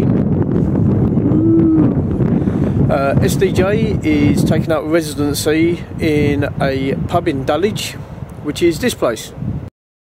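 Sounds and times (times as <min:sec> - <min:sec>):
wind buffeting microphone: 0:00.0 - 0:09.7
man humming: 0:01.2 - 0:02.2.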